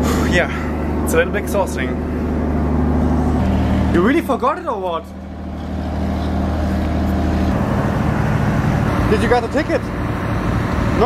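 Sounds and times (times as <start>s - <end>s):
ferry engines droning: 0.0s - 11.0s.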